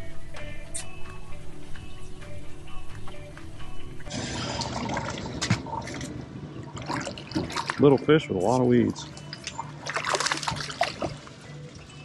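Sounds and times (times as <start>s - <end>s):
fish splashing in water: 4.2s - 8.2s, 9.0s - 11.4s.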